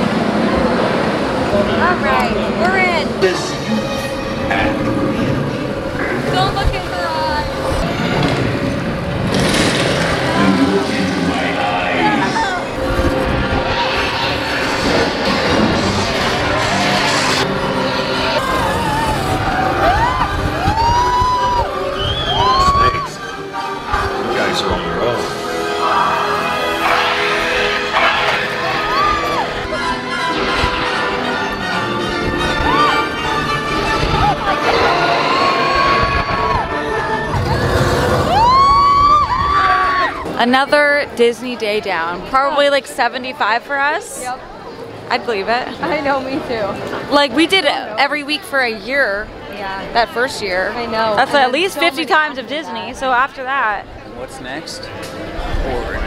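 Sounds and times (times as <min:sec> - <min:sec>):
loud ride soundtrack music: 0:03.2 - 0:39.5
riders whooping: 0:18.0 - 0:23.2, 0:25.8 - 0:30.7, 0:33.8 - 0:40.3.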